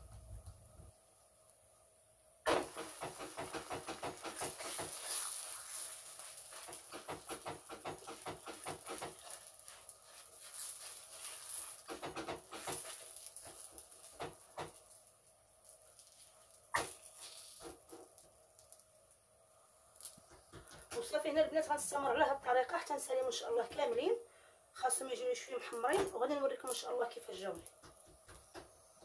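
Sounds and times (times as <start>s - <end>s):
hands patting dough on griddle: 2.5s - 15.0s, 15.7s - 18.3s, 20.0s - 21.2s, 27.6s - 29.0s.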